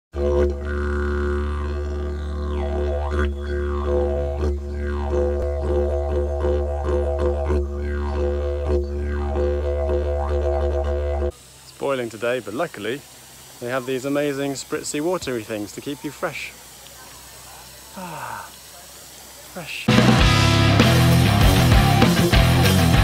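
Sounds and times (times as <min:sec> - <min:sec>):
didgeridoo drone: 0:00.2 - 0:11.4, 0:19.9 - 0:23.0.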